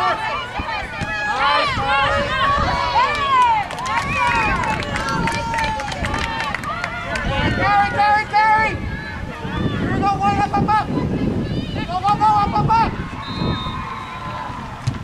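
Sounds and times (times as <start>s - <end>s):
people shouting and calling: 0.0s - 14.9s.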